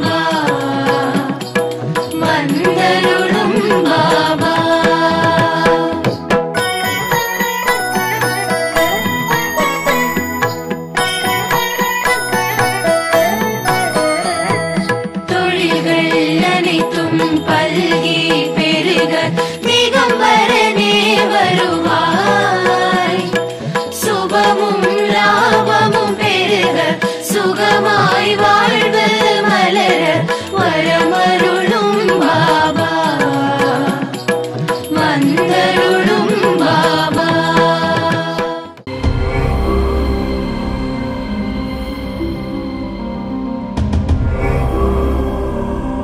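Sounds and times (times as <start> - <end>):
chanted devotional melody: 0.0 - 46.0
sharp percussion strokes: 0.0 - 46.0
held instrumental notes: 6.1 - 33.4, 38.9 - 46.0.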